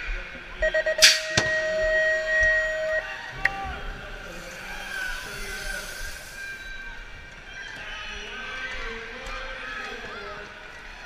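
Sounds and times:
short electronic beeps: 0:00.6 - 0:03.2
long steady tone: 0:00.6 - 0:06.9.

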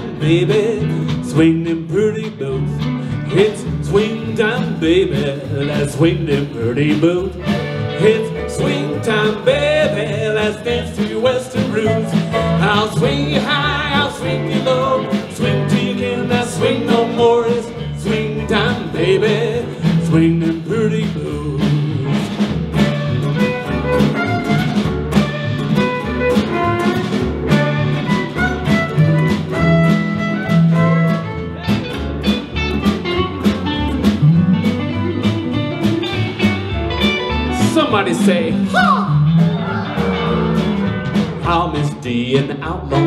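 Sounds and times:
drums: 0:00.0 - 0:43.0
upright bass walking: 0:00.0 - 0:43.0
western swing band playing: 0:00.0 - 0:43.0
steel guitar: 0:22.6 - 0:41.6
fiddle: 0:22.8 - 0:41.2.

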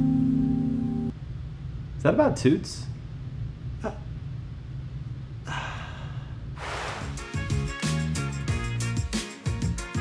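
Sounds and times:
hissing whoosh effect: 0:06.6 - 0:07.3.

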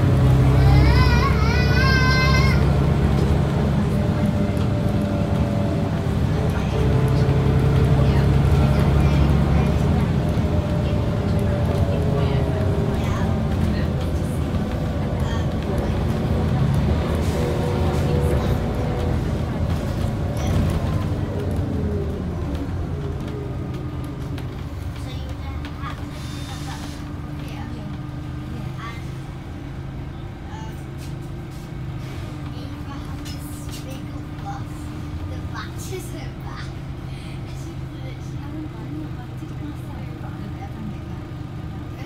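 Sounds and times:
bus engine running: 0:00.0 - 0:42.0.

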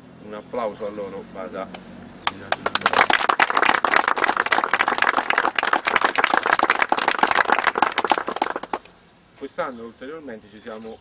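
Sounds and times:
people applauding: 0:02.2 - 0:08.9.

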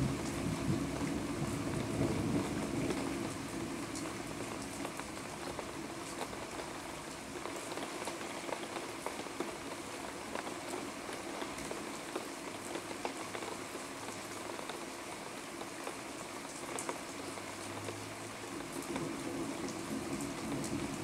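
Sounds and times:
rain falling steadily: 0:00.0 - 0:21.0.

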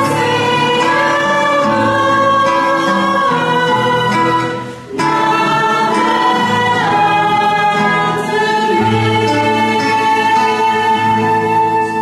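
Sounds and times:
acoustic guitar: 0:00.0 - 0:12.0
congregation singing a hymn: 0:00.0 - 0:12.0
flute: 0:04.0 - 0:12.0.

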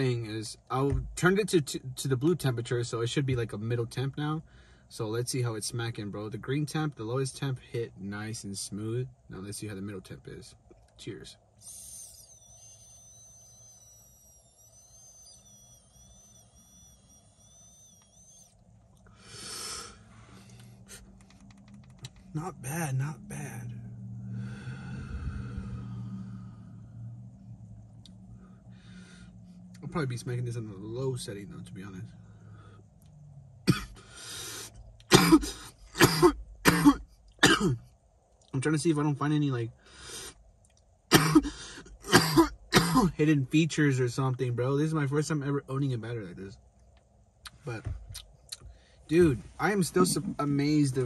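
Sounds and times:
vape inhale whistle: 0:11.6 - 0:21.1, 0:24.2 - 0:27.2, 0:28.2 - 0:29.7, 0:34.0 - 0:34.8, 0:39.8 - 0:40.4
breath out: 0:24.3 - 0:27.0
man coughing: 0:33.7 - 0:34.0, 0:35.1 - 0:37.8, 0:41.1 - 0:43.2.

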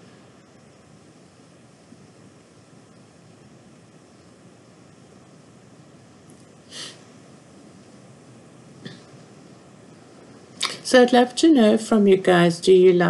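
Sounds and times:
faint background hiss: 0:00.0 - 0:13.0.

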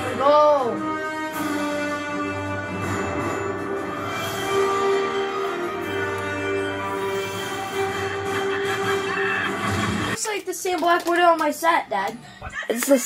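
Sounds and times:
television theme music: 0:00.0 - 0:13.0.

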